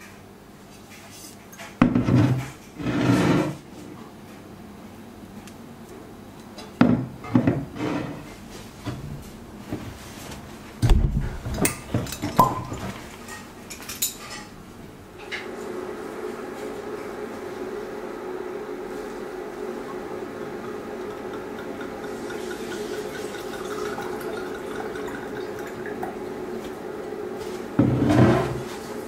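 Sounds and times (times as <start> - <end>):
objects rubbing on wooden table: 2.0 - 3.6, 27.4 - 28.9.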